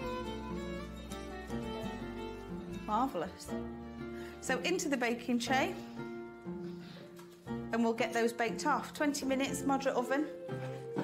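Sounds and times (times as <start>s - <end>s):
plucked string instrument tune: 0.0s - 4.3s.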